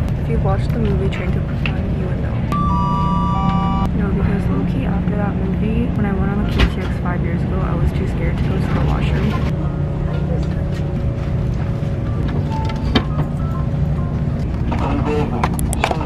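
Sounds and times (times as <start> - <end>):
train rumbling: 0.0 - 16.0
three-note falling chime: 2.6 - 3.9.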